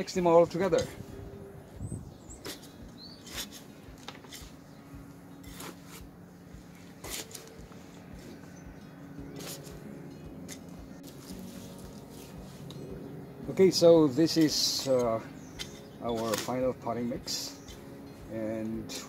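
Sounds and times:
soil rustling and scraping: 2.1 - 19.0.

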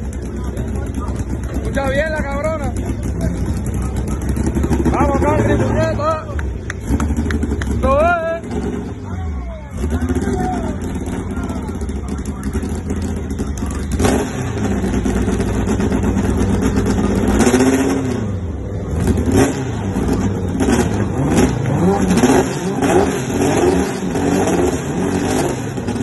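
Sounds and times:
car engine revving: 0.0 - 26.0.

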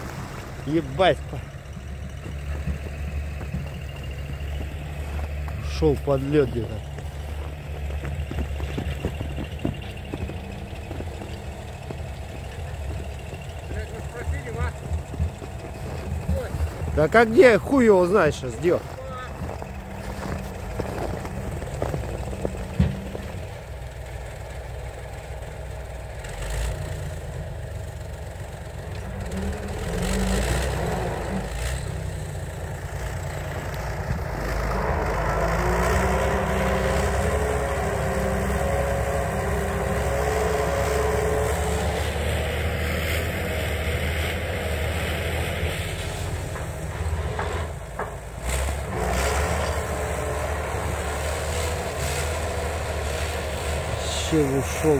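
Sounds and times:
engine straining under load: 0.0 - 54.9.

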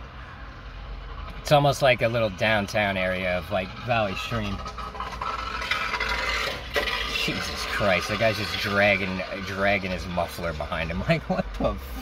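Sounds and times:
muffler scraping along road: 0.0 - 12.0
vehicle engine hum: 0.0 - 12.0.

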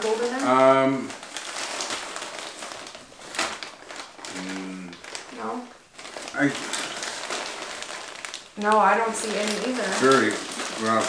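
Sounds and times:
plastic bag of hay rustling: 0.0 - 11.0.

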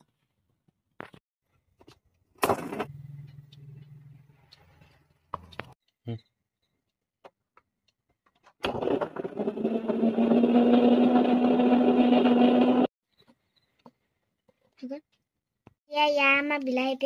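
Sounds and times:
mixer grinder motor humming: 8.6 - 12.9.

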